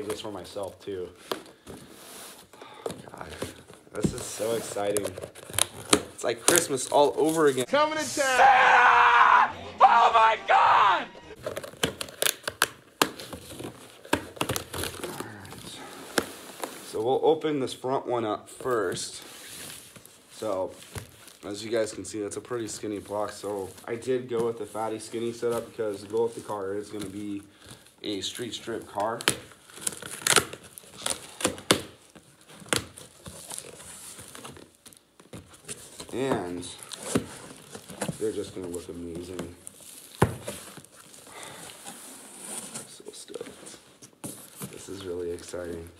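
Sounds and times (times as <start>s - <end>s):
packaging crinkling and tearing: 4.8s - 7.6s, 11.4s - 16.8s, 29.0s - 36.0s, 36.8s - 41.8s.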